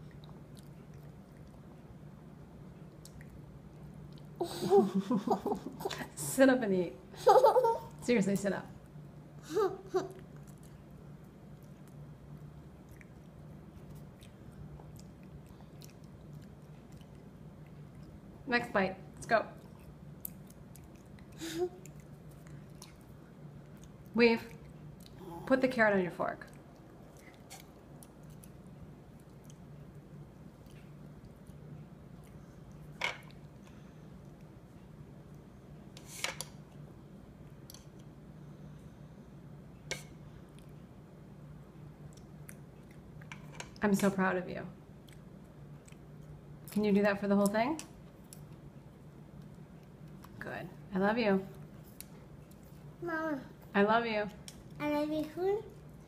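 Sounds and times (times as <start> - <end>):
child chewing: 0.0 - 4.8, 9.5 - 18.4, 19.6 - 25.6, 26.4 - 39.0, 39.9 - 40.9, 41.8 - 43.7, 44.9 - 46.8, 48.0 - 50.4, 51.5 - 53.6, 54.5 - 56.0
steady low hum: 0.0 - 56.0.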